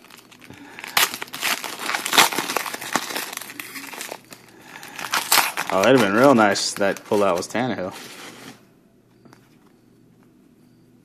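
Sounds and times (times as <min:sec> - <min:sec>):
trading cards crinkling and rustling: 0:00.0 - 0:08.6.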